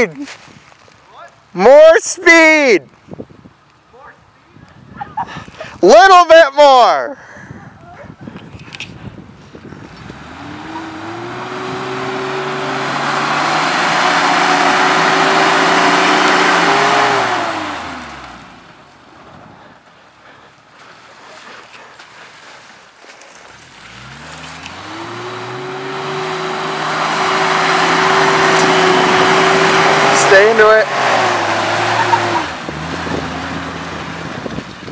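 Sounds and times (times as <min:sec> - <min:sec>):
engine revving hard: 0:09.8 - 0:18.6, 0:23.6 - 0:34.5.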